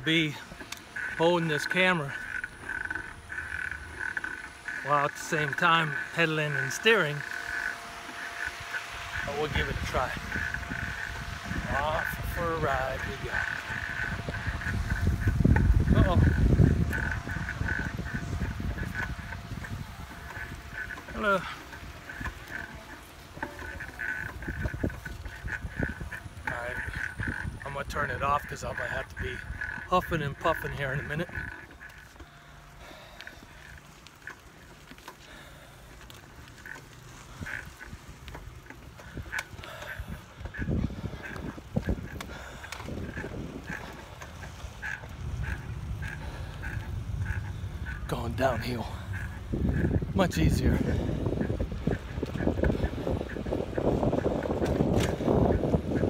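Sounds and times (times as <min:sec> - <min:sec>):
tricycle rolling: 0:00.0 - 0:56.0
wind buffeting microphone: 0:00.0 - 0:56.0
bike pedal squeak: 0:13.4 - 0:50.1.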